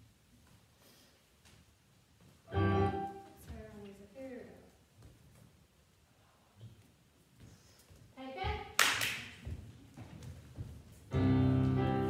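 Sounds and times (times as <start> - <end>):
sharp hand clap: 8.8 - 9.4.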